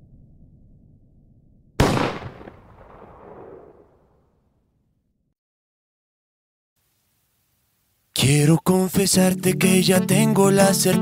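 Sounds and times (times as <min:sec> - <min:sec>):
loud bang with echo: 0:01.8 - 0:03.9.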